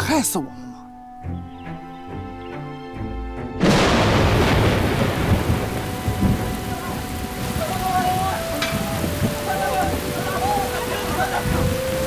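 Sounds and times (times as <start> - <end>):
heavy rain pouring: 3.6 - 12.0
low rolling thunder: 3.6 - 12.0.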